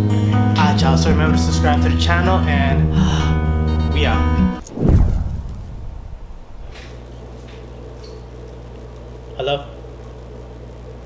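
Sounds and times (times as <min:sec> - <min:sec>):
low steady hum: 0:03.0 - 0:09.3
deep booming whoosh: 0:04.0 - 0:07.1.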